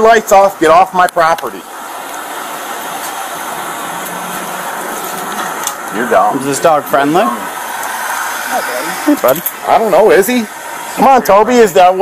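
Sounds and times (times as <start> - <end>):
steady rushing hiss: 0.0 - 12.0.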